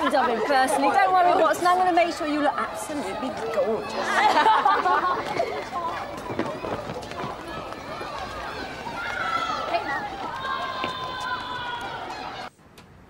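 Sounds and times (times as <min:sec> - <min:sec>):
children chattering and calling out: 0:00.0 - 0:12.6.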